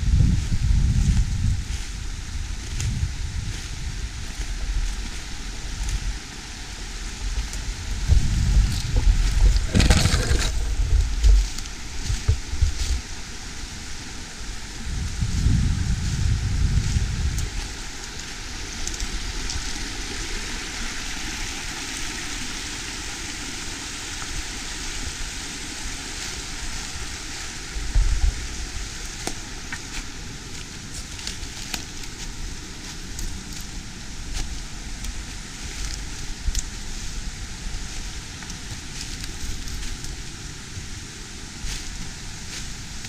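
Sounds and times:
wind buffeting microphone: 0:00.0 - 0:21.0
creek rushing over rapids: 0:01.9 - 0:43.0.

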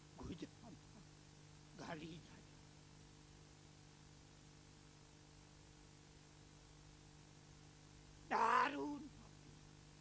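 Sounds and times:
faint hum: 0:00.0 - 0:10.0
man's drawn-out vocal over pa: 0:08.3 - 0:09.4.

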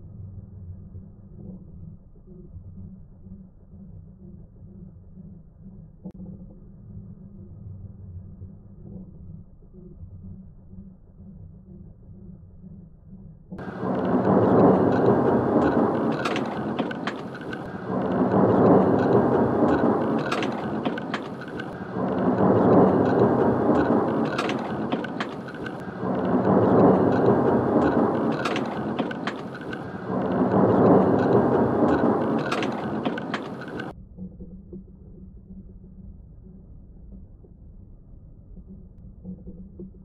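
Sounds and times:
thunder rumbling: 0:13.6 - 0:33.9.

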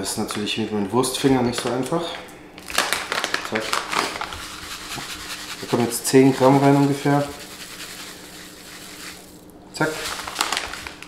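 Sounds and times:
foil pouch crinkling: 0:02.6 - 0:11.0.

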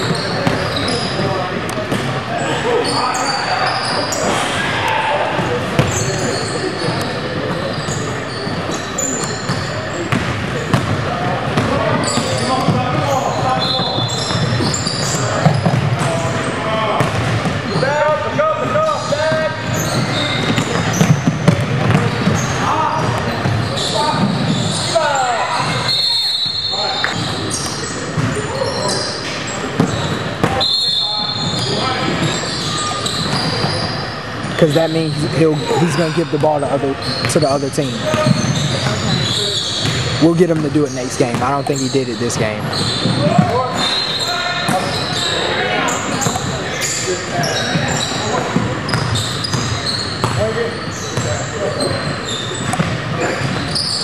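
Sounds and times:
players calling out: 0:00.0 - 0:54.0.

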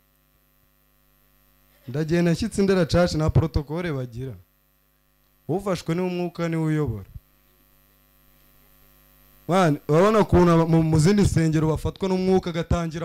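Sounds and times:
faint electrical hum: 0:00.0 - 0:13.0
man speaking into a microphone: 0:01.9 - 0:04.4, 0:05.5 - 0:07.2, 0:09.5 - 0:13.0.

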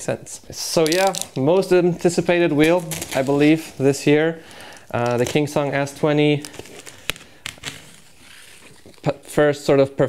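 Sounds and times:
knife blade scratching cardboard: 0:06.5 - 0:09.0.

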